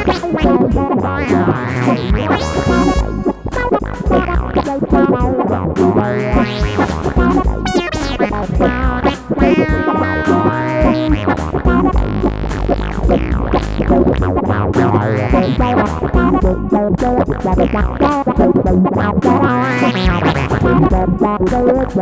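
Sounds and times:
bass line: 0.0 - 22.0
drum beats: 0.0 - 22.0
electronic wind instrument melody: 1.6 - 4.2, 6.3 - 8.2.

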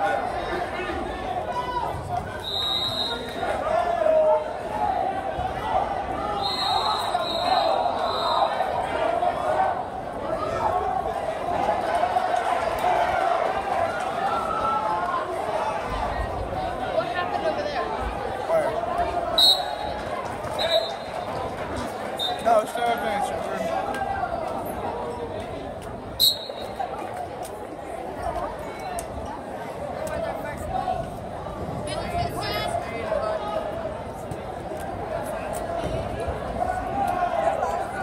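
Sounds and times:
spectators chattering: 0.0 - 38.0
voices echoing in a gym: 0.0 - 38.0.

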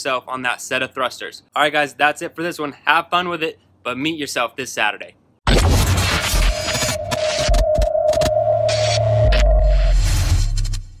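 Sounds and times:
sonar-like electronic tone: 6.2 - 10.8.

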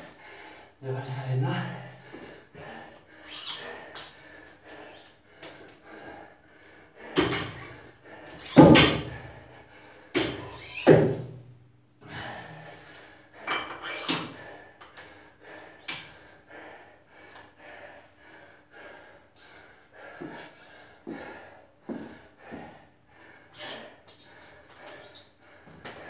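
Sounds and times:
man breathing hard: 0.0 - 0.8, 1.4 - 10.7, 12.0 - 26.0.

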